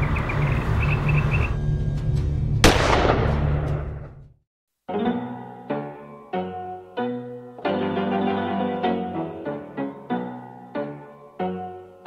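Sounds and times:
pistol gunshot: 2.6s - 3.8s.

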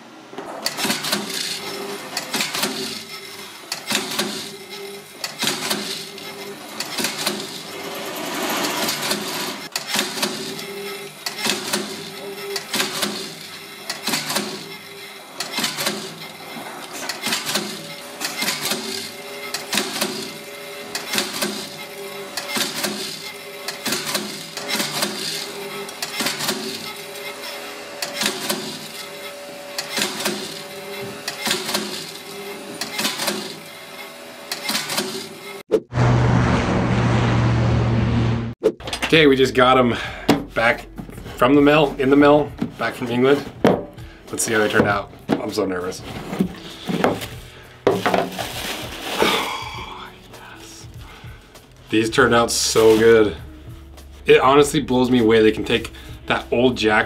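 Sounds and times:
constant machine hum: 0.0s - 35.6s
machine clacking strokes: 0.6s - 35.6s.

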